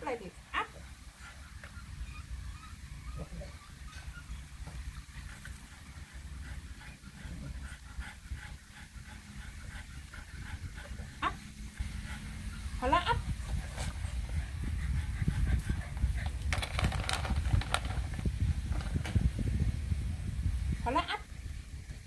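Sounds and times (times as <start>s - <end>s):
low rumbling microphone noise: 0.0s - 22.0s
puppy whining: 1.3s - 4.9s.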